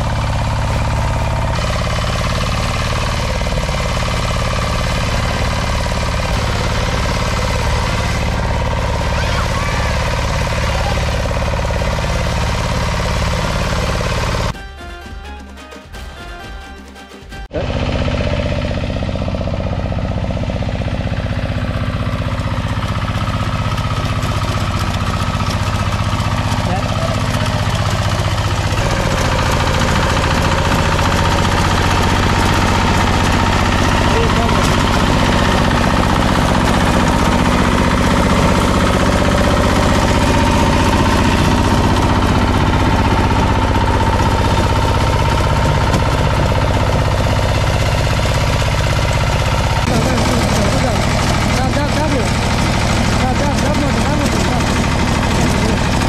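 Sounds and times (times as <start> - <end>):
tiller engine running under load: 0.0 - 56.0.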